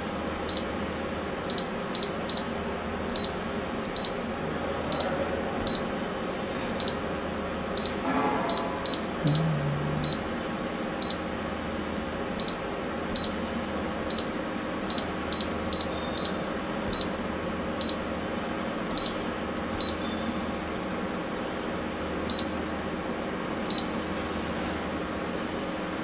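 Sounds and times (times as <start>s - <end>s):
steady low hum: 0.0s - 21.1s
short high beeps: 8.5s - 10.3s.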